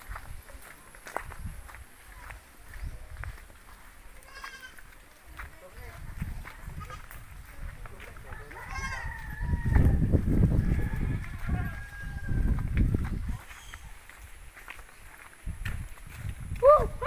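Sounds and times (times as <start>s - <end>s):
footsteps on gravel: 0.0s - 17.0s
goat bleating: 4.2s - 4.9s, 8.6s - 9.1s.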